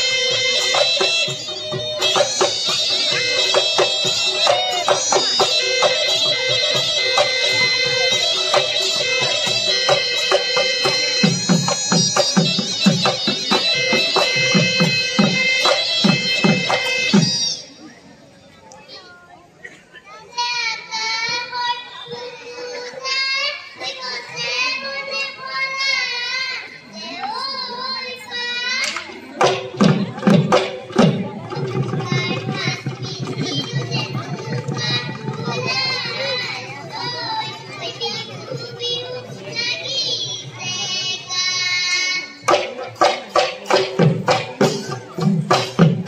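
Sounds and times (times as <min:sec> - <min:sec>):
girl singing into a microphone: 0:20.4 - 0:28.9, 0:31.4 - 0:42.7.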